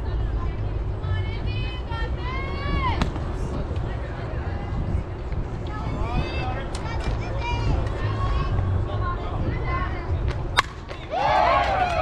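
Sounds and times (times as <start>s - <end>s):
wind rumble on microphone: 0.0s - 12.0s
people shouting and cheering: 10.9s - 12.0s.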